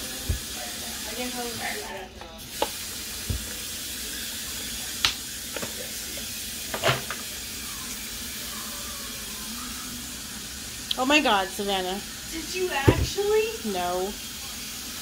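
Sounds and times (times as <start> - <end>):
tap running water: 0.0 - 15.0.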